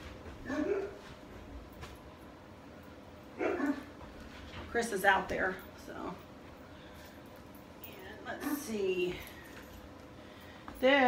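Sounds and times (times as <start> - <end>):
dog barking: 0.5 - 1.0.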